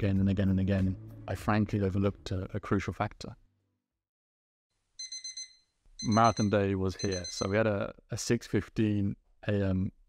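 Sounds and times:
alarm clock beeping: 5.0s - 7.6s.

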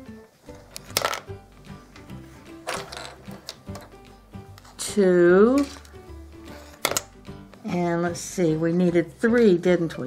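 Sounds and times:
soft background music: 0.0s - 10.0s
wooden game pieces clacking: 0.8s - 1.3s, 2.6s - 3.9s.

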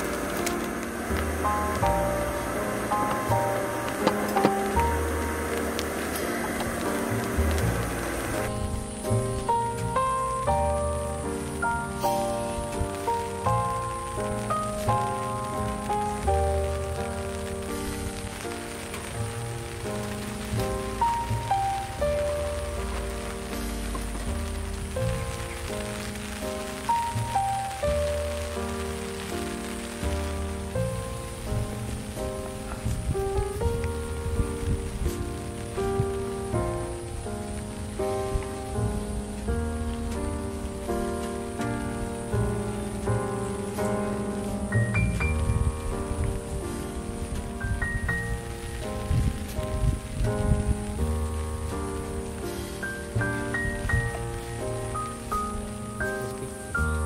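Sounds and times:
gentle instrumental melody: 0.0s - 57.0s
rain falling: 0.0s - 57.0s.

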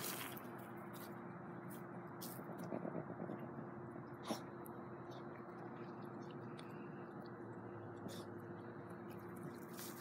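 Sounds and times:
rustling in dry grass: 0.0s - 2.5s, 9.4s - 10.0s
faint steady hum: 0.0s - 10.0s.

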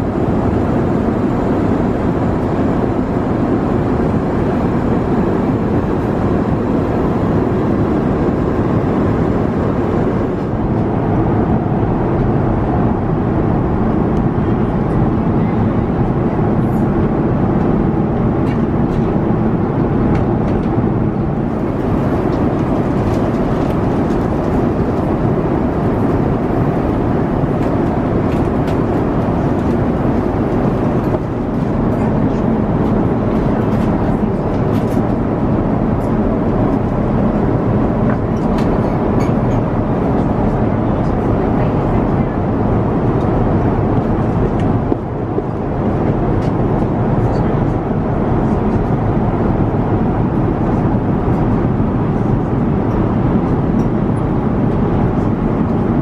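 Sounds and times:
airliner cabin noise: 0.0s - 56.0s.

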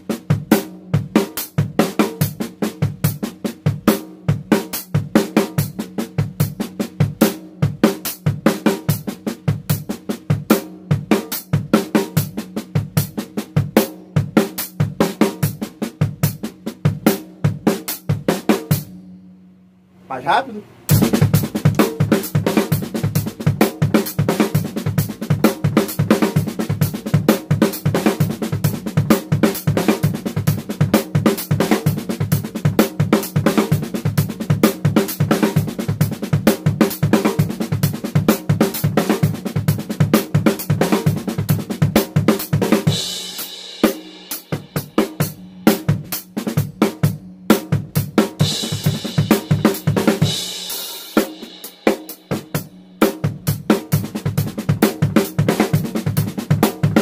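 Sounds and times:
snare and toms double strokes: 20.9s - 32.2s
bass drum: 20.9s - 51.6s, 52.2s - 57.0s.

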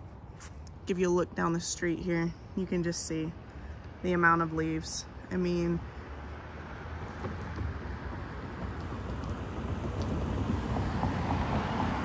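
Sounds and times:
outdoor rushing noise: 6.1s - 12.0s.

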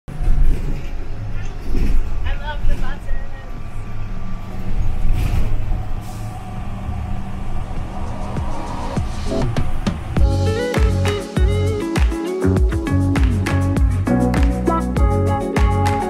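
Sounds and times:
road rumble: 0.1s - 11.8s
bus engine drone: 0.1s - 11.9s.

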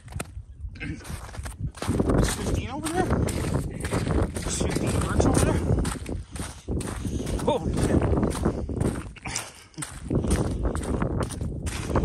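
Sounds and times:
wind buffeting microphone: 0.0s - 12.0s
footsteps on ice: 1.0s - 12.0s.

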